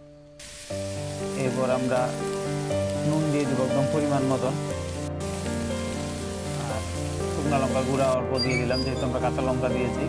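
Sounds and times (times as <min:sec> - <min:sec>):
background music with held notes: 0:00.0 - 0:10.0
vegetables sizzling in oil: 0:00.4 - 0:10.0.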